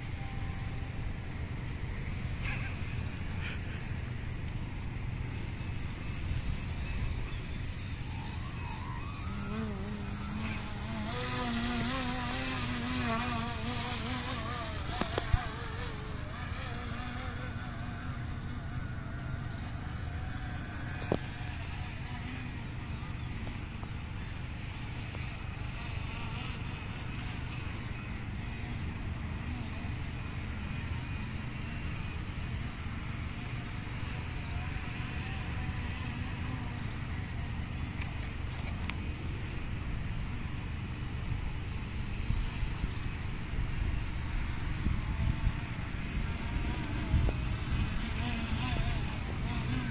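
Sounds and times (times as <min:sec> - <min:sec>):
model plane motor buzzing: 0:00.0 - 0:49.9.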